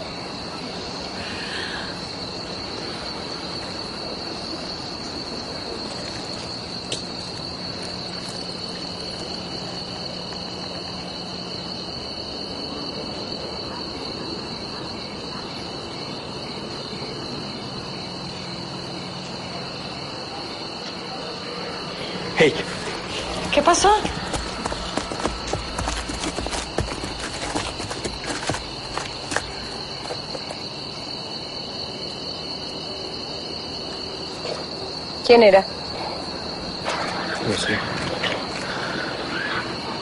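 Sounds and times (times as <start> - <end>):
crickets chirping: 0.0 - 40.0.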